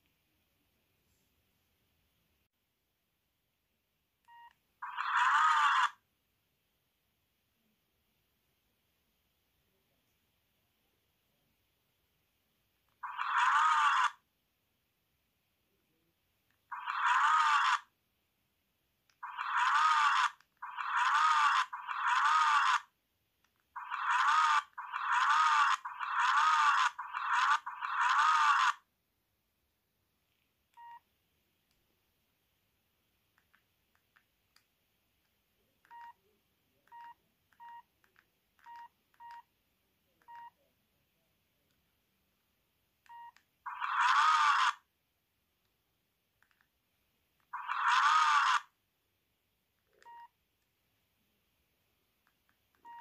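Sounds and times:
phone speaker sound clip: 0:04.8 - 0:06.0, 0:13.0 - 0:14.2, 0:16.7 - 0:17.9, 0:19.2 - 0:22.8, 0:23.8 - 0:28.8, 0:43.7 - 0:44.8, 0:47.5 - 0:48.7.

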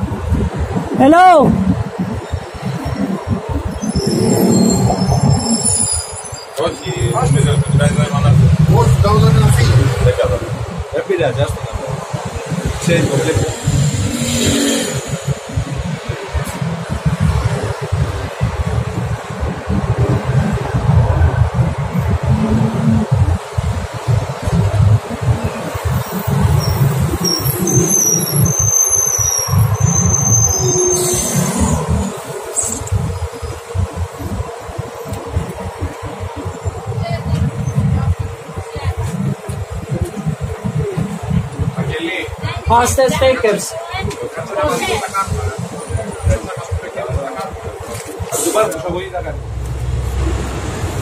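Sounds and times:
city traffic: 0:00.0 - 0:51.0
wind buffeting microphone: 0:00.0 - 0:51.0.

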